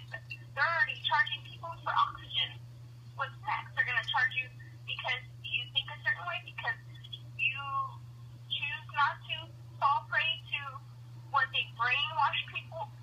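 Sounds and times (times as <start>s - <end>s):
person talking over telephone: 0.0s - 2.6s, 3.2s - 10.8s, 11.4s - 13.0s
steady low hum: 0.0s - 13.0s.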